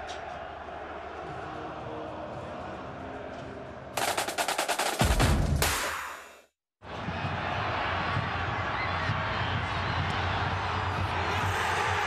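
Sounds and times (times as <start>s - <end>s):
rapid rattling sound effect: 4.0s - 5.3s.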